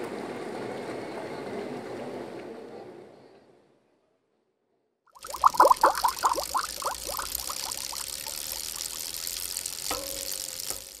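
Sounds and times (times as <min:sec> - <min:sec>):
bubble blips: 0:05.2 - 0:09.6
steady hiss: 0:05.2 - 0:11.0.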